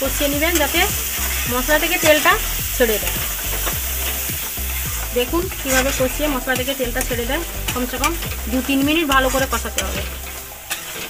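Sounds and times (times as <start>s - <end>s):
metal spatula scraping pan: 0.0s - 11.0s
oil sizzling: 0.0s - 11.0s.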